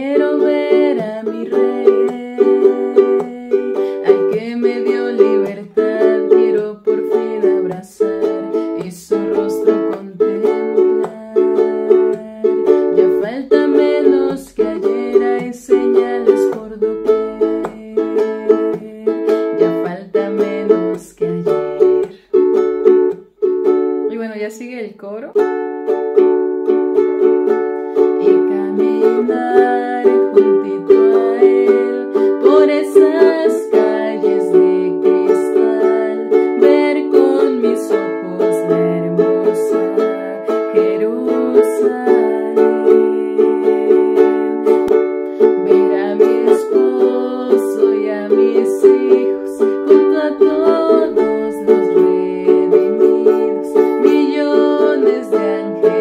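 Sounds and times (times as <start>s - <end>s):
ukulele strumming: 0.0s - 56.0s.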